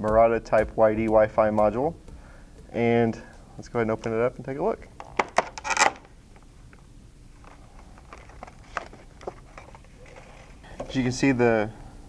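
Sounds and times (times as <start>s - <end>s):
plastic pack clicks and crinkles: 7.4s - 9.9s.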